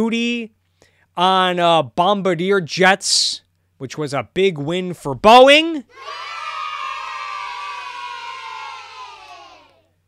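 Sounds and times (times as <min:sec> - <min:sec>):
crowd cheering: 0:05.9 - 0:09.8.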